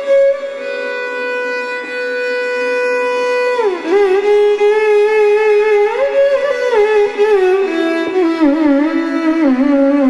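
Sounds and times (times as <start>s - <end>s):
violin holding long bowed note: 0.0s - 10.0s.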